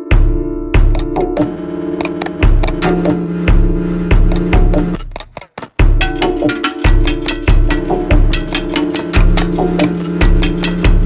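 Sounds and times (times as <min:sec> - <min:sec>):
electronic soundtrack music: 0:00.0 - 0:11.0.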